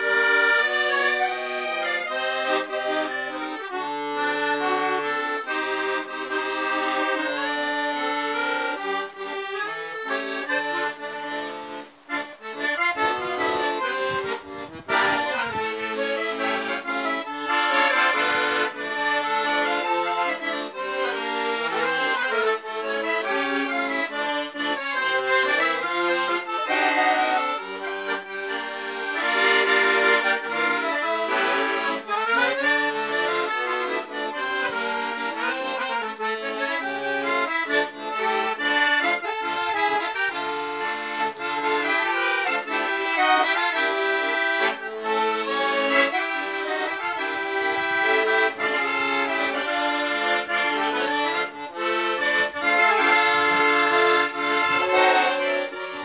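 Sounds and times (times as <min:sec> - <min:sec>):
piano accordion melody: 0:00.0 - 0:56.0.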